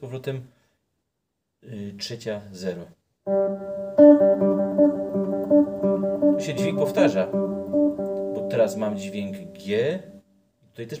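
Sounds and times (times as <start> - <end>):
clean electric guitar notes: 3.3 - 10.3.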